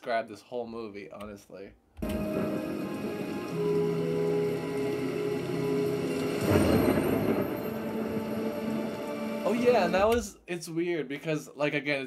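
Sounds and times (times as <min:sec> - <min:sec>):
rainfall: 0:02.0 - 0:10.2.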